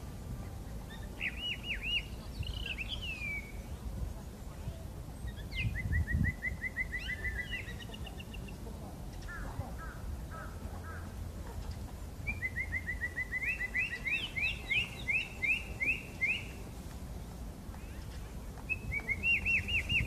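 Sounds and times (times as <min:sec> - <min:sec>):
blackbird singing: 0:00.0 - 0:03.9, 0:04.7 - 0:16.6, 0:17.8 - 0:20.0.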